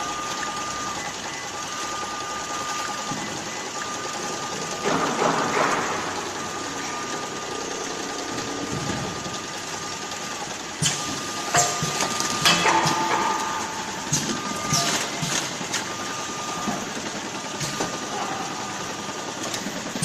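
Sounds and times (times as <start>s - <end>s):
machine mechanical hum: 0.0s - 20.0s.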